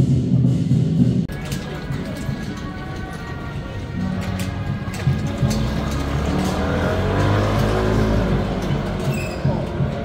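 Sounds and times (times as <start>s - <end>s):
motor scooter passing: 1.3s - 10.0s.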